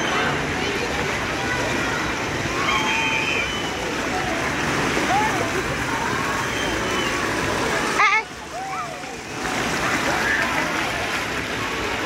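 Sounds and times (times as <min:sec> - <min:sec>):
children's voices calling: 0:00.0 - 0:11.7
fountain jets splashing water: 0:00.0 - 0:12.0.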